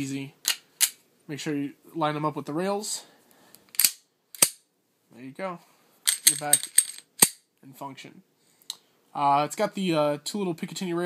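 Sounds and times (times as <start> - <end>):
pistol slide metallic clicks: 3.7 - 4.6.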